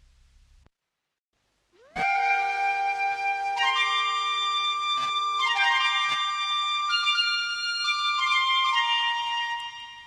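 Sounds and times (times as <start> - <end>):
folk melody: 1.8 - 10.0.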